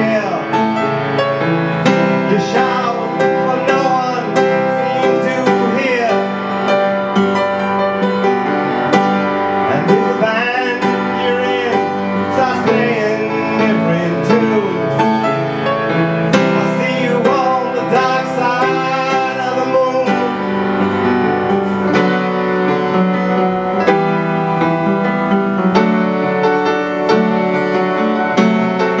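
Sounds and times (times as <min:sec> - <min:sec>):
piano chords: 0:00.0 - 0:29.0.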